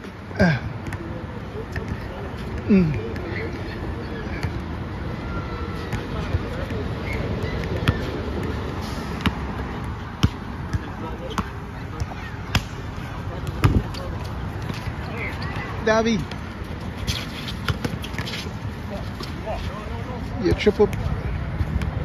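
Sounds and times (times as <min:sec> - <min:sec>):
open-air background noise: 0:00.0 - 0:22.0
basketball bouncing on asphalt: 0:07.6 - 0:08.6, 0:09.2 - 0:16.8, 0:17.5 - 0:18.4.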